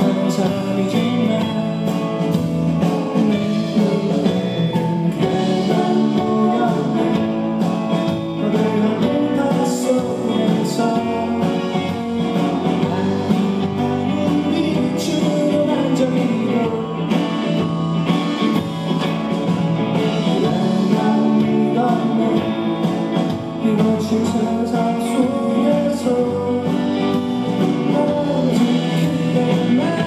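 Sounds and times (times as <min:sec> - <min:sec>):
male vocal singing: 0:00.0 - 0:02.2, 0:02.8 - 0:07.6, 0:08.4 - 0:17.4, 0:20.0 - 0:30.0
live pop-rock band: 0:00.0 - 0:30.0.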